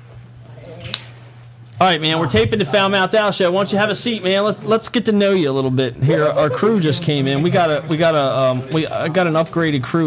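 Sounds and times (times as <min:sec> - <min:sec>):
steady low hum: 0:00.0 - 0:10.0
man speaking: 0:01.8 - 0:10.0.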